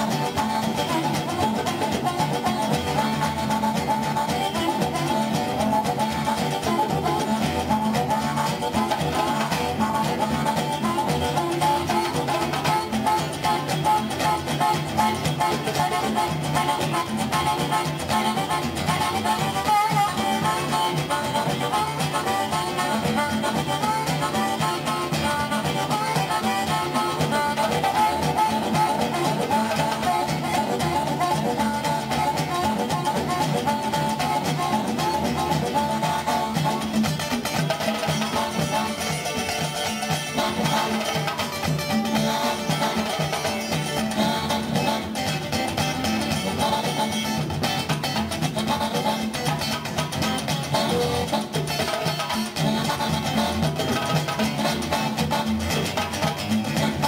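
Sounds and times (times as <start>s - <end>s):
hand drum: 0.0s - 57.0s
harmonica playing fast: 0.0s - 57.0s
strummed acoustic guitar: 0.0s - 57.0s.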